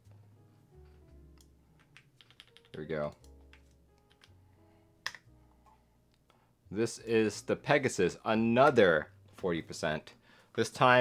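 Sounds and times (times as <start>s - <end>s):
quiet background music: 0.0s - 11.0s
computer keyboard clicks: 2.2s - 4.3s.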